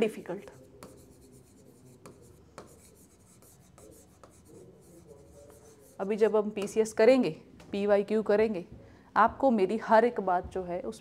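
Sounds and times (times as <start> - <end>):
pen writing on whiteboard: 0.4 - 6.8.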